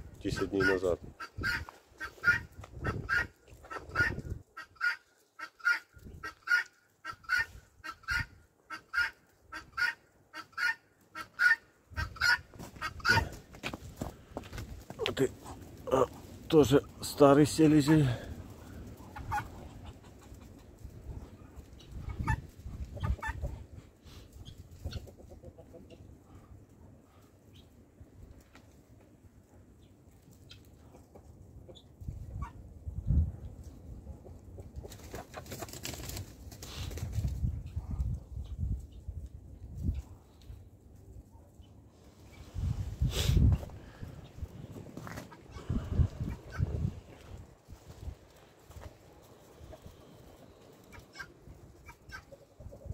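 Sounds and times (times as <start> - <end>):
chickens clucking: 0.0 - 27.8, 29.4 - 32.7, 33.5 - 40.6, 41.5 - 52.9.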